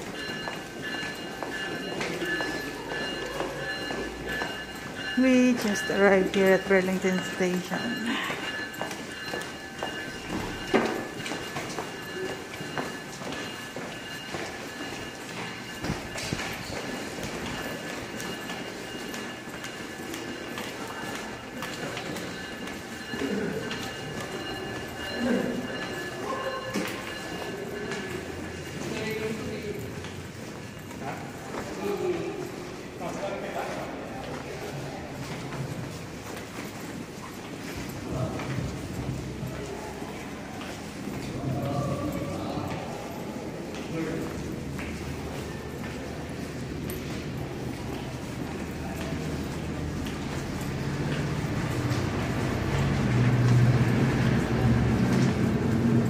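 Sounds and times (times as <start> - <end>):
voices talking: 0.0 - 35.9
crowd footsteps on concrete: 0.0 - 56.0.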